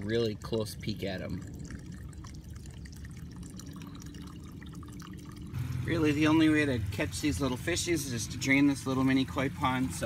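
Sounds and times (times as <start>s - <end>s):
water trickling and dripping: 0.0s - 10.0s.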